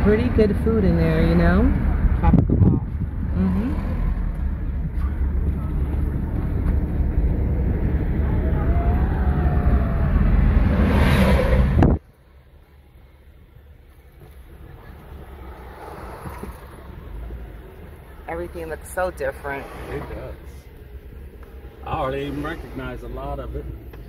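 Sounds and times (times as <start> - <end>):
wind buffeting microphone: 0.0 - 12.1
car road noise: 0.0 - 24.0
road hum inside car: 0.0 - 24.0.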